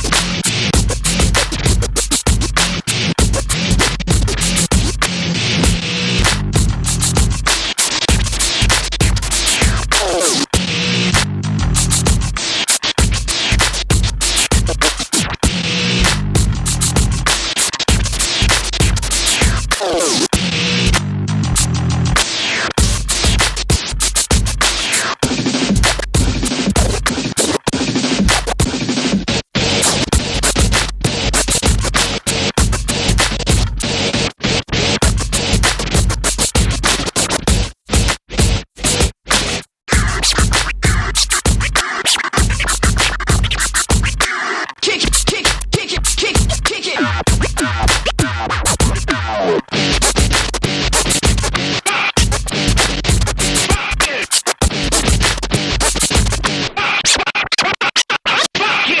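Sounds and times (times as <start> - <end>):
deep bass: 0.0 - 7.5, 10.6 - 12.4, 15.5 - 19.6, 20.4 - 22.2
hip hop beat: 0.0 - 57.2
turntable scratching: 0.0 - 59.0.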